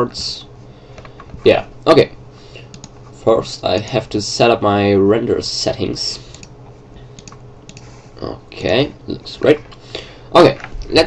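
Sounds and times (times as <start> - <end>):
low steady hum: 0.0 - 11.0
mouse and keyboard clicks: 2.7 - 3.0.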